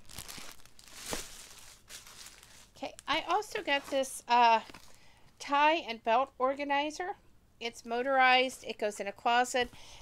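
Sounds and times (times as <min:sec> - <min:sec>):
plastic packaging crinkling: 0:00.0 - 0:05.0.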